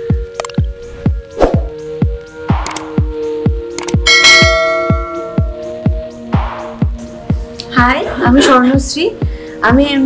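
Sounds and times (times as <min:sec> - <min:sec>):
background music with steady beat: 0:00.0 - 0:10.0
quick clicks: 0:02.6 - 0:02.9, 0:03.7 - 0:04.0
bright bell ding: 0:04.1 - 0:05.7.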